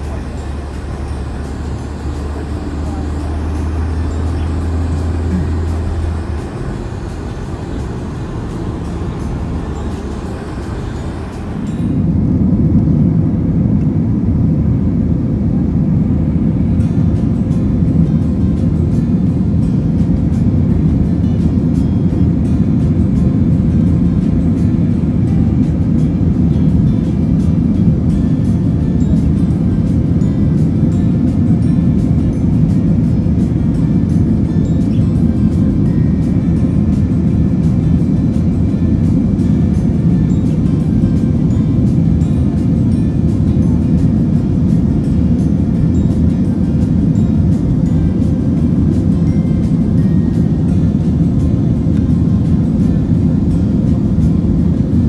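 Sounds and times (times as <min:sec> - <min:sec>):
airliner cabin noise: 0:00.0 - 0:55.0.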